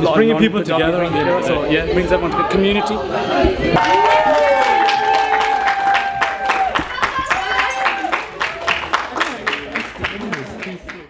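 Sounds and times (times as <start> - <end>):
group clapping hands: 3.8 - 11.0.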